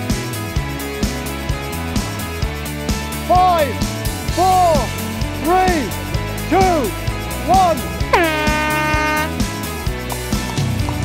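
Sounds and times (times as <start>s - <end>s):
background music with beat: 0.0s - 11.0s
air horn blast: 8.1s - 9.4s.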